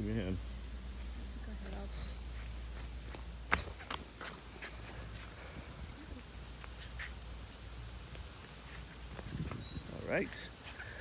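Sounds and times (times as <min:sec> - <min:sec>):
squeaky flip-flop footsteps: 0:01.6 - 0:05.3, 0:08.4 - 0:10.0.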